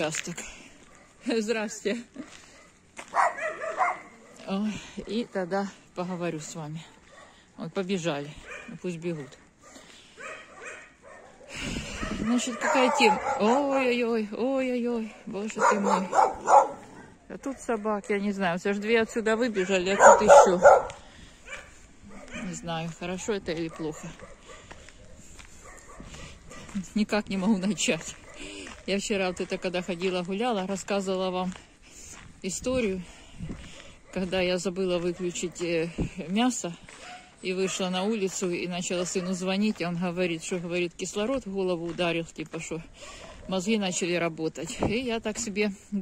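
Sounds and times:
dog barking: 2.5s - 5.3s, 7.0s - 7.4s, 8.4s - 13.8s, 15.1s - 18.3s, 19.6s - 22.7s, 23.6s - 26.8s, 28.2s - 28.6s, 37.0s - 37.9s, 39.0s - 39.5s, 43.0s - 43.7s.

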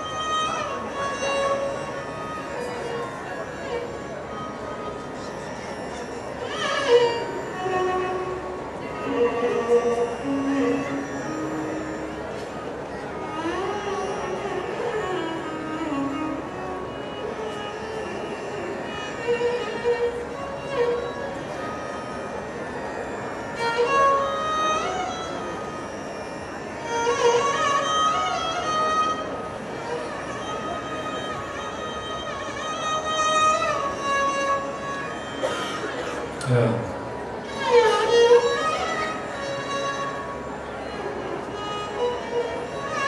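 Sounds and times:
violin melody with slides: 0.0s - 35.4s, 37.4s - 43.0s.

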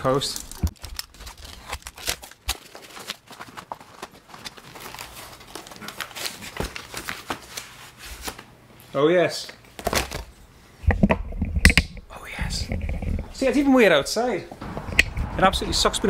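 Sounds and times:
hands tearing cardboard and paper: 0.0s - 8.4s.

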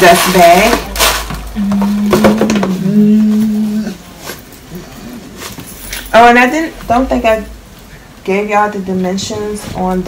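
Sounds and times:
woman humming a long note: 1.6s - 4.0s.

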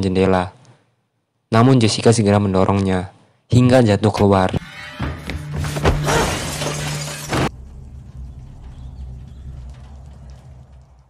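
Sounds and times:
window glass shattering: 4.6s - 7.6s.

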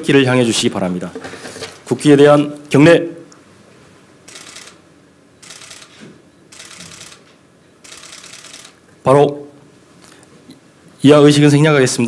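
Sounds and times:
camera shutter clicks: 4.3s - 4.8s, 5.4s - 8.8s.

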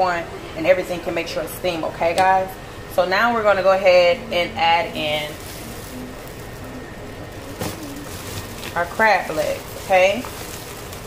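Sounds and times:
plastic bag rustling: 4.7s - 11.0s.

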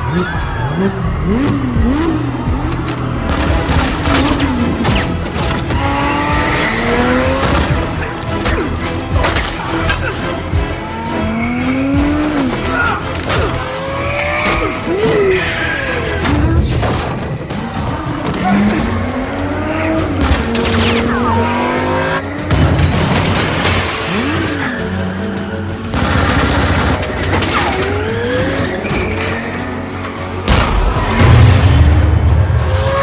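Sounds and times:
car engine revving: 0.0s - 8.8s, 17.8s - 22.4s.

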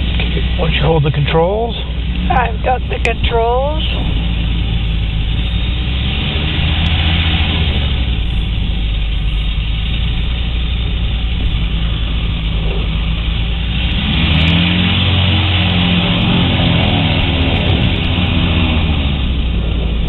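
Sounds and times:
engine and propeller drone: 0.0s - 20.0s.

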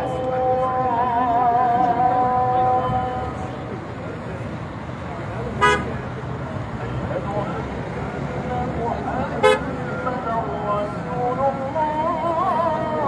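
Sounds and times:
crowd voices: 0.0s - 13.0s
car horn toots: 5.6s - 6.0s, 9.4s - 9.7s.

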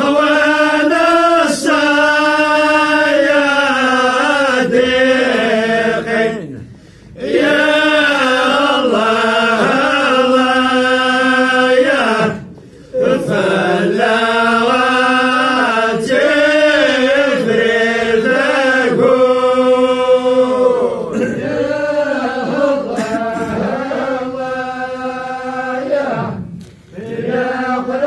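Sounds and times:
voices chanting: 0.0s - 26.4s, 27.0s - 28.0s.

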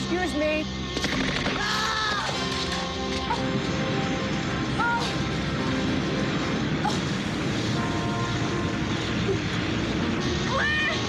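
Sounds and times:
fire burning: 0.0s - 11.0s.

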